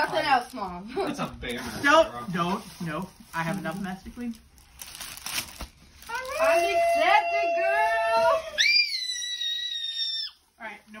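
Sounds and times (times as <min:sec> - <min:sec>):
women squealing: 0:06.1 - 0:10.4.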